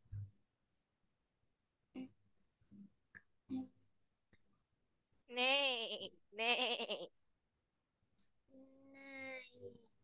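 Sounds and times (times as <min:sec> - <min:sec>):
goat-like bleating calls: 0:05.3 - 0:07.1.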